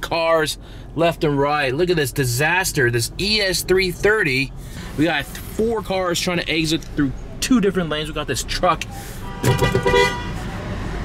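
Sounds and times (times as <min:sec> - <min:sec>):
low rumble of traffic: 0:00.0 - 0:11.0
vehicle horn honking: 0:09.2 - 0:10.5.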